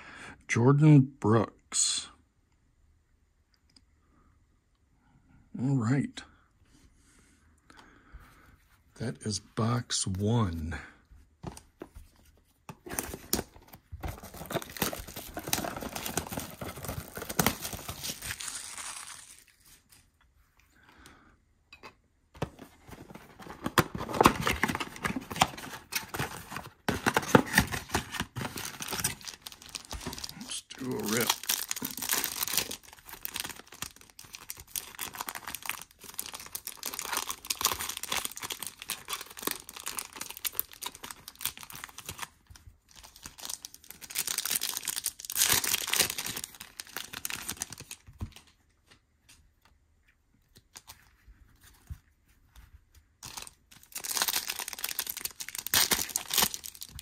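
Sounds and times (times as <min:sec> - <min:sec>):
plastic wrappers crinkling: 0:12.8 - 0:20.1, 0:22.9 - 0:48.6, 0:53.2 - 0:57.0.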